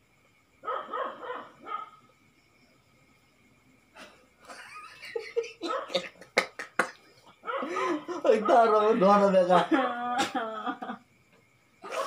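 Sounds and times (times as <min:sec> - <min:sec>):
dog yelping barks: 0:00.6 - 0:02.0, 0:05.6 - 0:06.0, 0:07.4 - 0:07.7.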